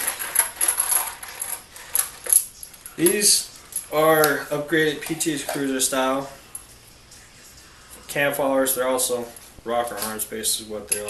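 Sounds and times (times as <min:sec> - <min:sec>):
metal rocker arms clinking: 0:00.0 - 0:06.7, 0:10.8 - 0:11.0.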